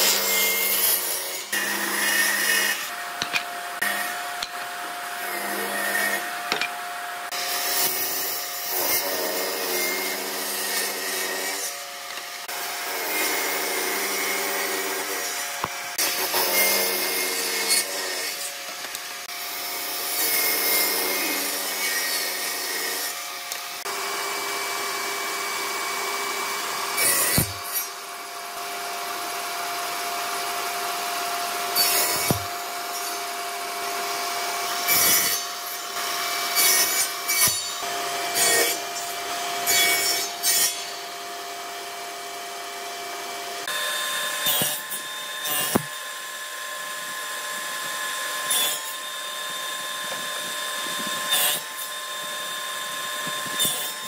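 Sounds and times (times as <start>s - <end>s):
table saw cutting wood: 0.0s - 54.0s.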